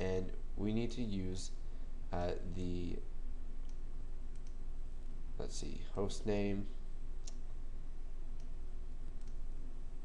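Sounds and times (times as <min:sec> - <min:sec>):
microphone hiss: 0:00.0 - 0:10.0
computer mouse clicks: 0:03.6 - 0:04.6, 0:07.2 - 0:07.4, 0:08.4 - 0:09.4.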